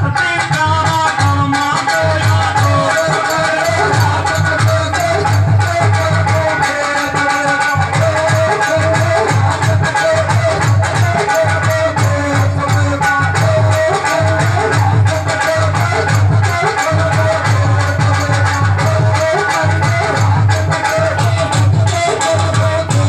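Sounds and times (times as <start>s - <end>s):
steady drum beat: 0.0s - 23.0s
rattling shaker percussion: 0.1s - 23.0s.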